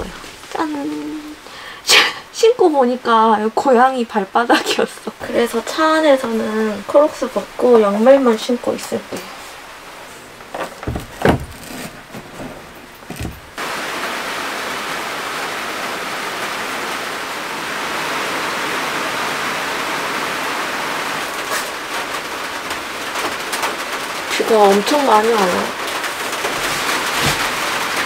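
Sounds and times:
heavy rain on metal van body: 0.0s - 28.0s.

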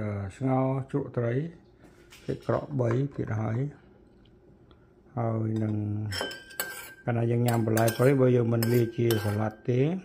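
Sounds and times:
person talking: 2.2s - 3.8s
metal spoon scraping porcelain bowl: 5.6s - 9.6s.

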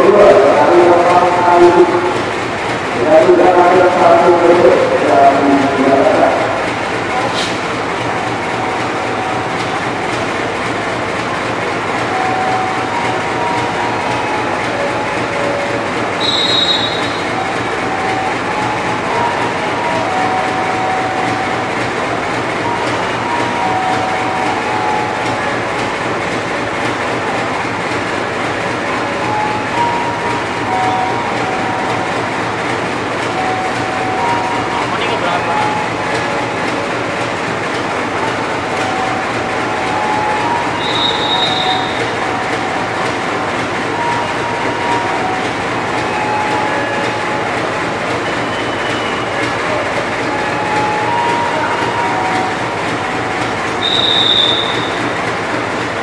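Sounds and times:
diesel locomotive idling: 0.0s - 56.0s.

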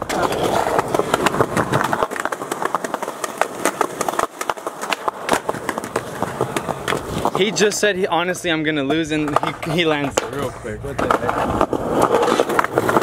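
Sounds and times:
skateboard clacks: 0.0s - 13.0s
skateboard wheels rolling on concrete: 0.0s - 13.0s.

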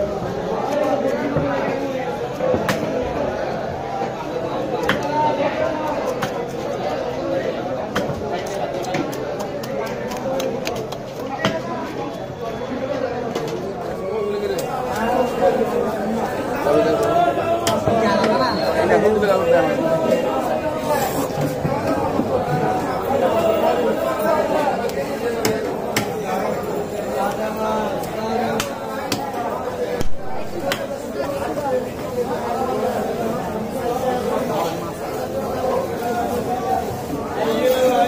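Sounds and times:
background chatter: 0.0s - 38.0s
people talking in background: 0.0s - 38.0s.

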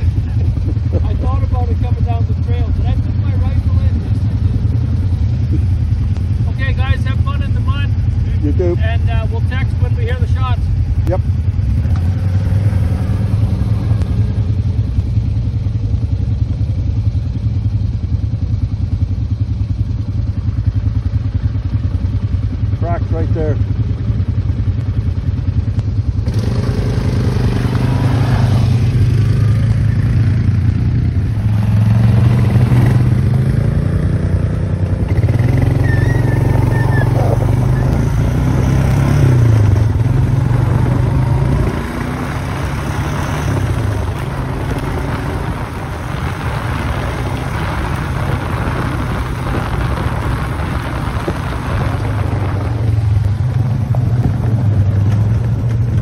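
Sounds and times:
atv engines running: 0.0s - 56.0s
vehicles on dirt trail: 0.0s - 56.0s.

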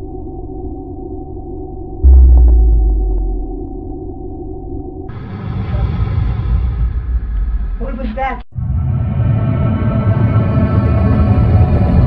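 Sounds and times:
dark ambient drone: 0.0s - 7.8s
heavy low rumble: 2.0s - 4.2s.

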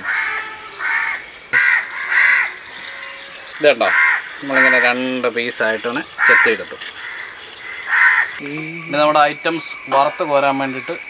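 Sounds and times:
crow cawing: 0.0s - 9.4s.

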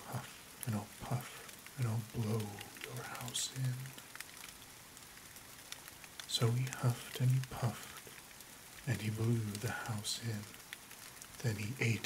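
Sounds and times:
faint steady rain: 0.0s - 12.0s
raindrop ticks: 0.0s - 12.0s.

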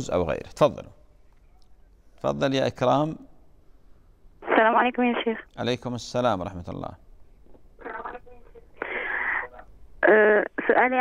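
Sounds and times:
breathing out into telephone: 8.8s - 9.6s.

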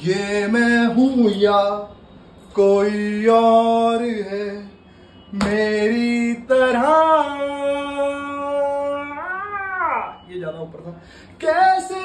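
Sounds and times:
man singing unaccompanied: 0.0s - 10.2s, 11.4s - 12.0s.

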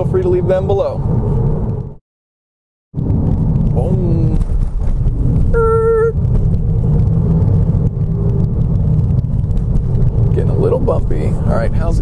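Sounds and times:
road and engine rumble in car cabin: 0.0s - 2.0s, 3.0s - 12.0s.

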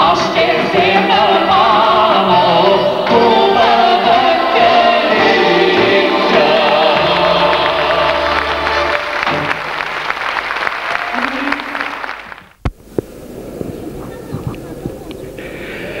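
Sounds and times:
man and woman singing: 0.0s - 9.0s
clarinet and accordion folk band: 0.9s - 9.6s
audience applause: 5.3s - 12.6s.

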